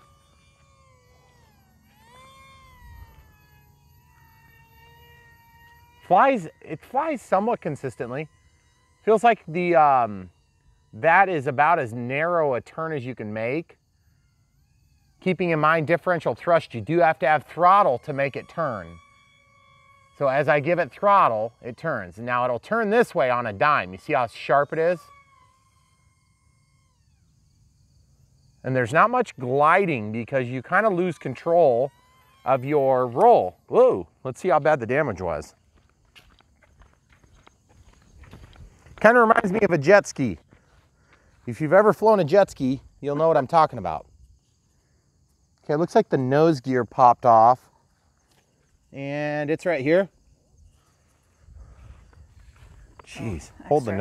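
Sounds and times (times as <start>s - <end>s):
faint high-pitched electric motor whine: 0.0s - 54.0s.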